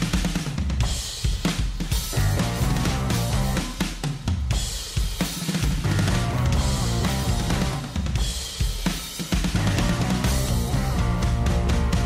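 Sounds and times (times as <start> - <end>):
drum kit: 0.0 - 12.0
blues-rock band playing: 2.1 - 3.8, 5.8 - 8.3, 9.4 - 12.0.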